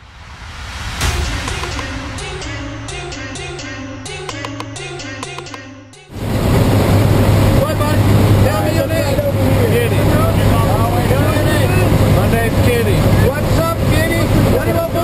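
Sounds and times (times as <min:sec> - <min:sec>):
plane engine and propeller drone: 0:06.1 - 0:15.0.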